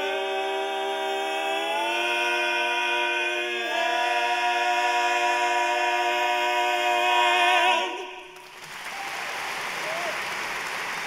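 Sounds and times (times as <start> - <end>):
male quartet singing a cappella: 0.0 - 8.4.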